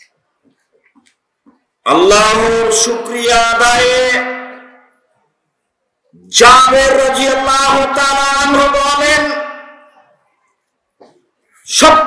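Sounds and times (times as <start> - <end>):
man chanting over loudspeaker: 1.9 - 4.9, 6.2 - 10.0, 11.6 - 12.0.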